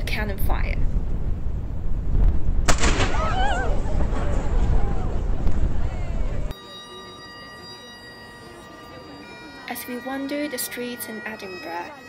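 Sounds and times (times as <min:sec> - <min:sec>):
wind rumble on microphone: 0:00.0 - 0:06.5
bagpipe playing: 0:06.5 - 0:12.0.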